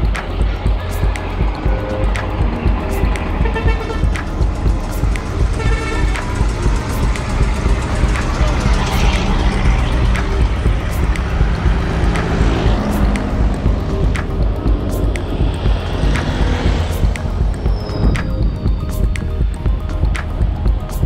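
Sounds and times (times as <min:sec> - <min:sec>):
background music: 0:00.0 - 0:21.0
road traffic: 0:00.0 - 0:21.0
truck passing: 0:00.0 - 0:21.0
wind rumble: 0:00.0 - 0:21.0.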